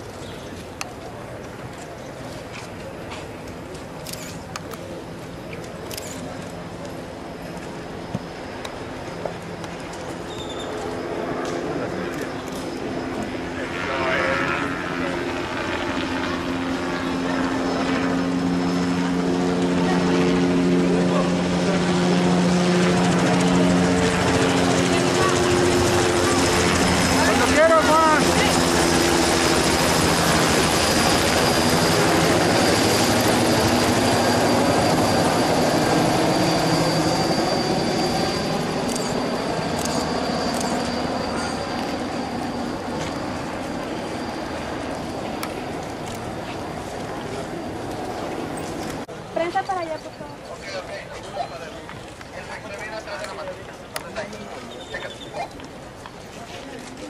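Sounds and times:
low engine-like drone: 0:00.0 - 0:50.8
crowd of many voices: 0:00.0 - 0:57.0.

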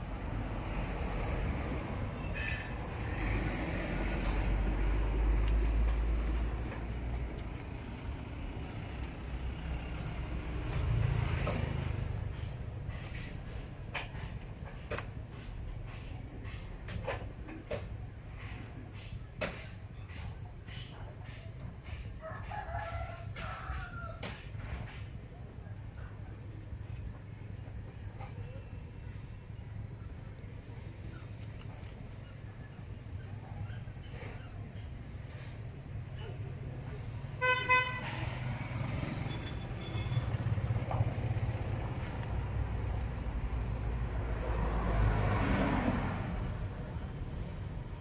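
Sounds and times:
traffic rumble: 0:00.0 - 0:48.0
rooster crowing: 0:22.2 - 0:24.2
vehicle horn toots: 0:37.4 - 0:38.2.

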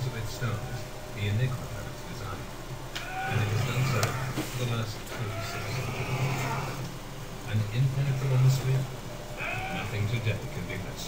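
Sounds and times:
man narrating: 0:00.0 - 0:11.0.

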